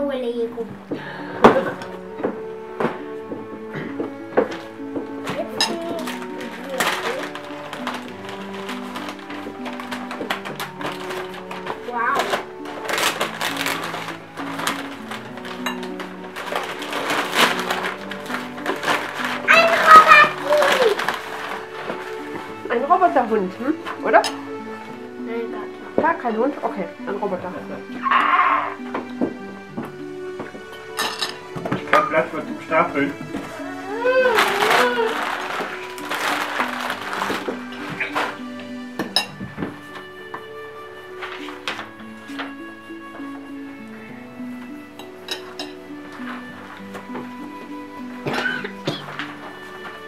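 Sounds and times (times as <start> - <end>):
background music: 0.0 - 50.0
wrapping paper rustling and tearing: 5.4 - 24.0, 31.9 - 39.0, 39.6 - 43.3, 45.4 - 50.0.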